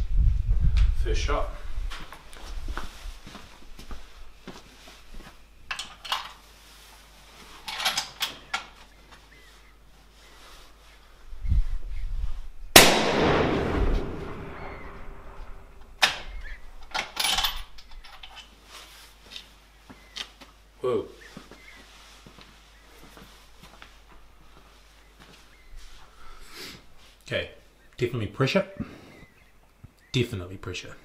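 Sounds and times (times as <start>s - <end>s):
rifle shot: 12.8s - 16.2s.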